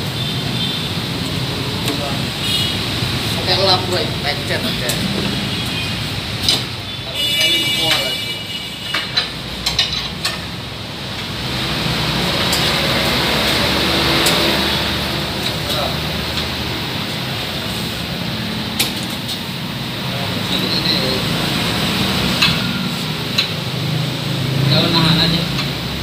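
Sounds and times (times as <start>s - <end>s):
steady background noise: 0.0s - 26.0s.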